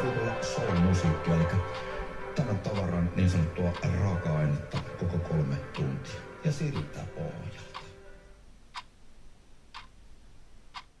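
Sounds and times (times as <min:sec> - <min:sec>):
clock ticking: 0:00.0 - 0:08.1, 0:08.7 - 0:09.0, 0:09.7 - 0:10.0, 0:10.7 - 0:11.0.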